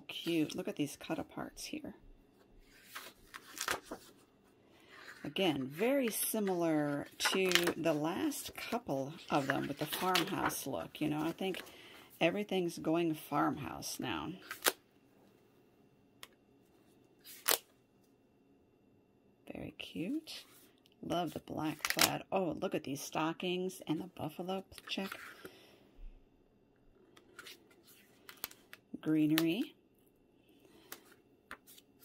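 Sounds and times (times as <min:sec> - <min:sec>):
paper pages rustling: 0:02.6 - 0:04.3, 0:04.9 - 0:11.8, 0:27.2 - 0:28.8, 0:30.8 - 0:32.0.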